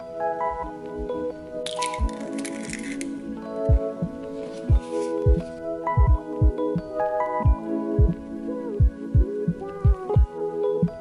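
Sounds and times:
lo-fi hip-hop music: 0:00.0 - 0:11.0.

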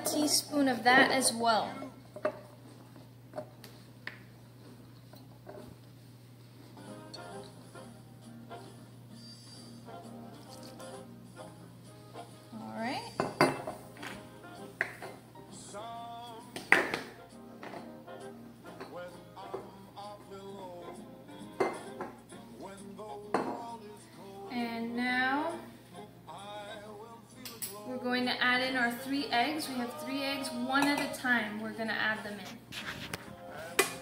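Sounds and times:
background music: 0:00.0 - 0:02.1, 0:06.6 - 0:34.0.

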